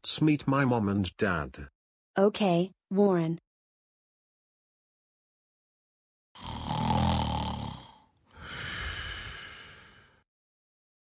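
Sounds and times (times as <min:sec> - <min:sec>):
person snoring: 0:06.4 - 0:10.3.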